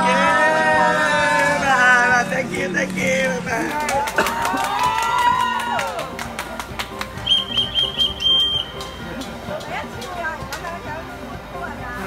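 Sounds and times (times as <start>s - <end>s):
background music: 0.0s - 12.0s
high wavering whistling tone: 7.2s - 8.8s.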